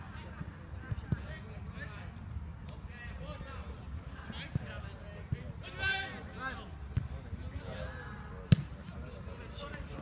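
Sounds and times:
football kicked with a thud: 8.5s - 8.8s.

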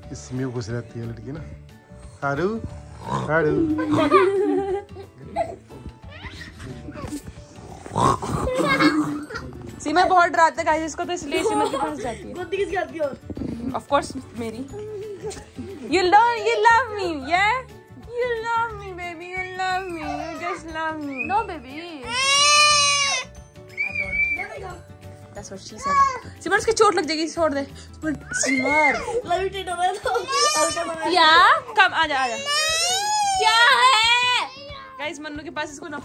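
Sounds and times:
music: 0.0s - 36.0s
children squealing playfully: 6.1s - 6.7s, 19.2s - 24.8s, 28.2s - 29.4s, 30.0s - 35.0s.

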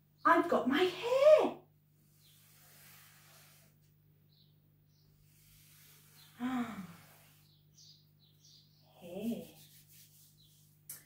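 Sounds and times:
fingertip rubbing through flour: 2.0s - 4.0s, 5.1s - 7.6s, 9.0s - 10.9s.

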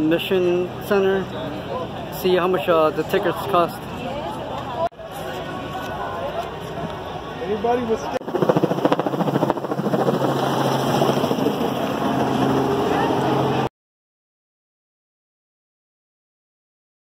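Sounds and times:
crowd chatter: 0.0s - 8.3s, 11.0s - 13.7s
helicopter rotor chopping: 7.8s - 13.7s.

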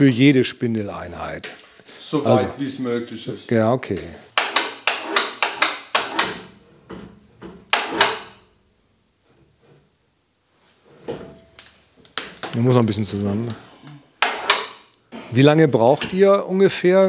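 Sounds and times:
metal clanks and knocks: 4.4s - 8.4s, 10.9s - 11.6s.

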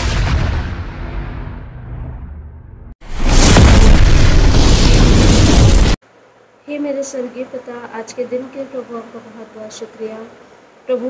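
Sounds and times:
explosion boom and rumbling roar: 0.0s - 6.0s.

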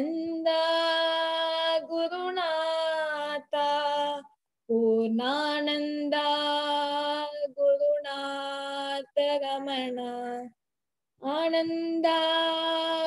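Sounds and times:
woman singing: 0.0s - 10.6s, 11.2s - 13.0s.

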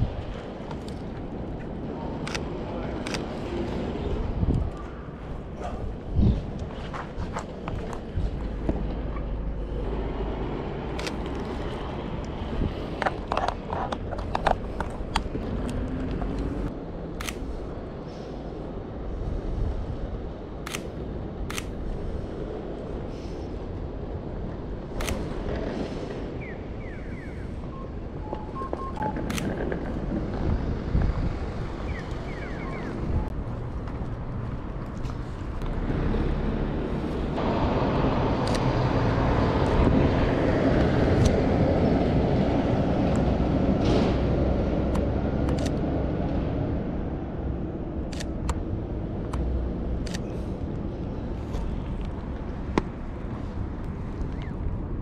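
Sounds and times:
street traffic: 0.0s - 55.0s
camera shutter clicks: 11.0s - 11.5s, 17.2s - 17.5s, 20.6s - 21.8s, 25.0s - 25.4s, 29.3s - 29.6s, 38.4s - 38.7s, 45.4s - 45.8s, 48.1s - 48.6s.

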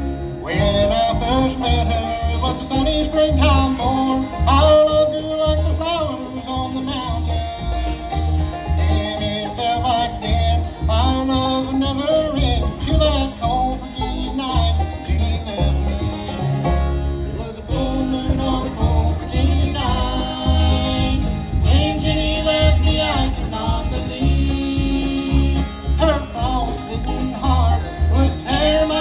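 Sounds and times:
acoustic guitar: 0.0s - 29.0s
banjo: 0.0s - 29.0s
fiddle: 0.0s - 29.0s
upright bass pulsing: 0.0s - 29.0s
person singing: 0.3s - 16.5s, 17.3s - 29.0s.

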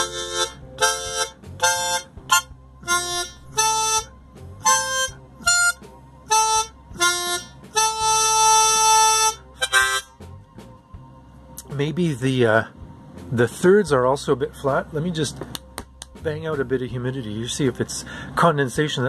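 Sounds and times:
harmonica notes and chords: 0.0s - 10.8s.

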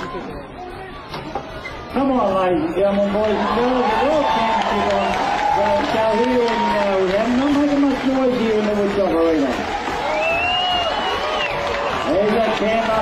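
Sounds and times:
crowd noise: 0.0s - 13.0s.

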